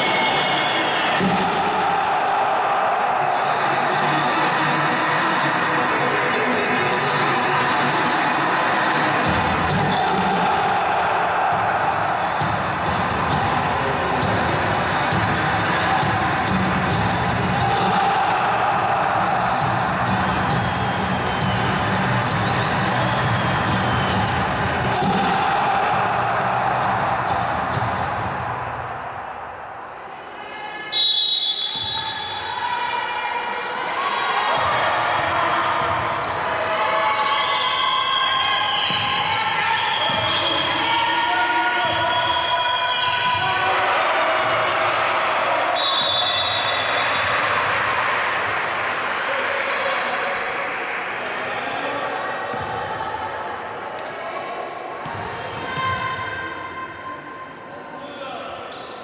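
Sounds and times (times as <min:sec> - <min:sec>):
music over public address: 0:00.0 - 0:29.2, 0:30.8 - 0:52.7
players' voices echoing: 0:00.0 - 0:59.0.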